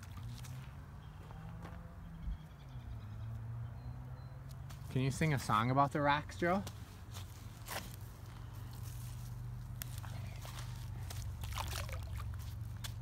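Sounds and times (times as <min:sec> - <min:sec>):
footsteps and rocks on stony shore: 0:00.0 - 0:01.8, 0:06.6 - 0:13.0
rock splashing into water: 0:11.4 - 0:12.4.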